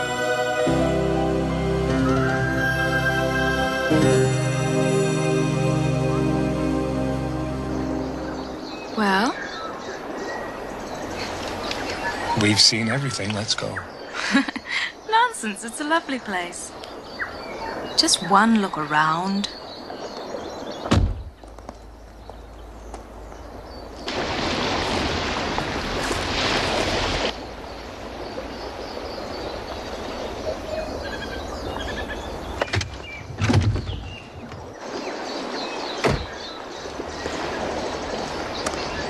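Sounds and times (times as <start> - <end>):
car door shutting: 36.0 - 36.4.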